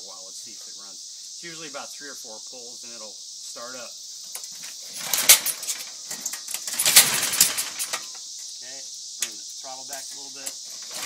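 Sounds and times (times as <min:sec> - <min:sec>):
engine cranking and firing: 0:04.9 - 0:08.1, 0:10.7 - 0:11.0.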